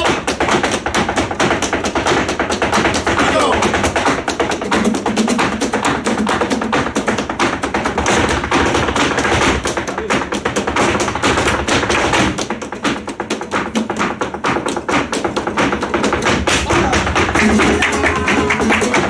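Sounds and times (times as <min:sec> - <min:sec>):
dancer's shoes on wooden floor: 0:00.0 - 0:19.0
flamenco guitar: 0:00.0 - 0:19.0
hand clapping: 0:00.0 - 0:19.0.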